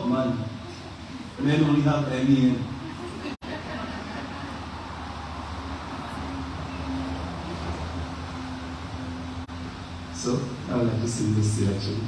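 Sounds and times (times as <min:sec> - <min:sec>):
audience murmur: 0:00.4 - 0:08.0.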